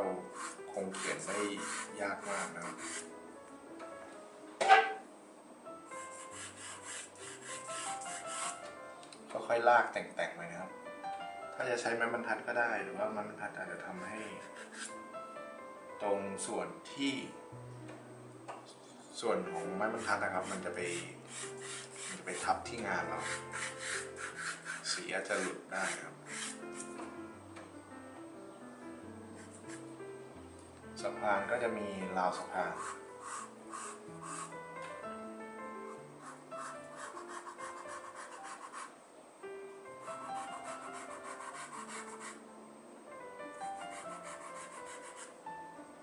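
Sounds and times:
pencil scratching on paper: 0.3 - 3.1, 5.9 - 8.7, 14.0 - 15.0, 19.5 - 27.0, 29.4 - 29.9, 32.6 - 34.6, 36.2 - 39.0, 40.0 - 42.4, 43.8 - 45.4.

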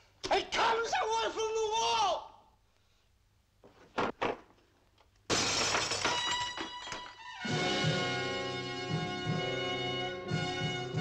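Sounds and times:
glass pieces clattering: 5.3 - 7.2
glass shattering: 5.3 - 7.2
dramatic orchestral music: 7.4 - 11.0.

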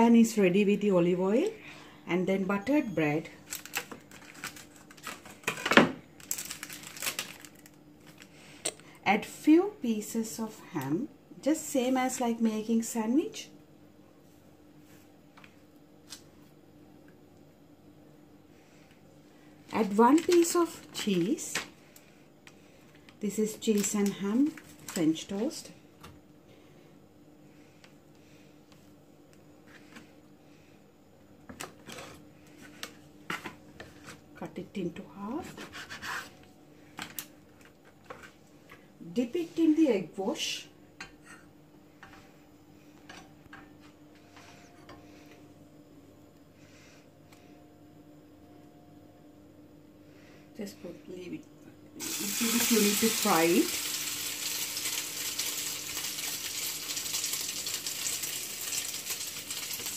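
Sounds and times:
faint steady hum: 0.0 - 59.9
plastic packaging crinkling: 3.4 - 8.3, 19.8 - 21.4, 23.6 - 25.2, 52.1 - 59.9.

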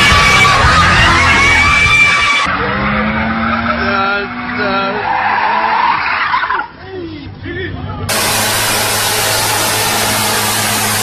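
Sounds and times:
people shouting: 0.0 - 5.8
car engine running: 8.1 - 11.0.

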